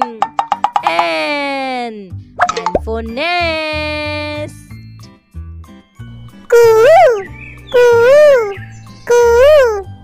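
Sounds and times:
cartoon tone sliding down: 6.6s - 7.2s, 7.8s - 8.5s.

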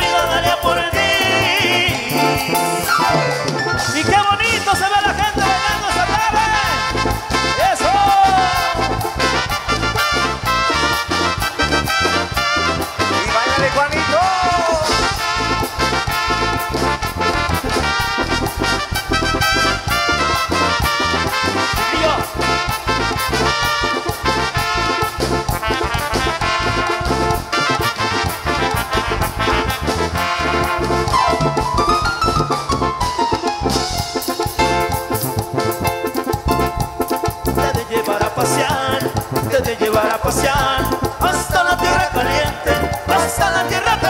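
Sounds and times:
drum kit dance beat: 0.0s - 44.0s
electric bass: 0.0s - 44.0s
keyboards: 0.0s - 44.0s.

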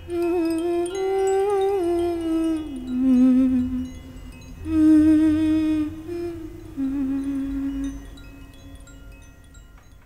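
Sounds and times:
tinkling chime notes: 0.0s - 10.0s.

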